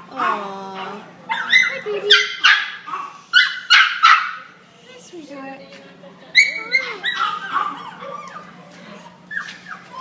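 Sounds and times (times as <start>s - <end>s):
dog whining softly: 6.4s - 10.0s.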